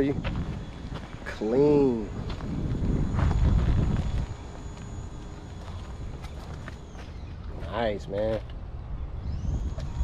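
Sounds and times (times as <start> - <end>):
footsteps on pavement: 0.0 - 8.6.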